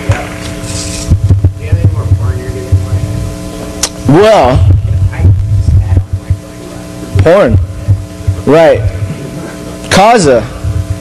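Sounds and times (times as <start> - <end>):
low thumps: 0.0 - 9.3
electrical hum: 0.0 - 11.0
faint voices: 1.6 - 11.0.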